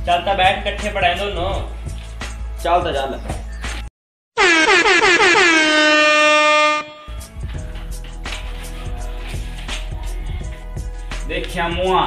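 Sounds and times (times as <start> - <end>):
background music: 0.0 - 3.9, 6.6 - 12.0
air horn blasts: 4.4 - 7.2.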